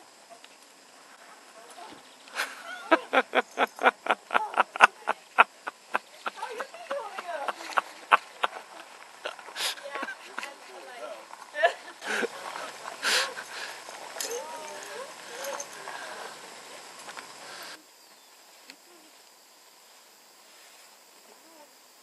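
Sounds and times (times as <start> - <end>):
faint outdoor background: 0.0 - 22.0
indistinct voices: 2.9 - 10.9.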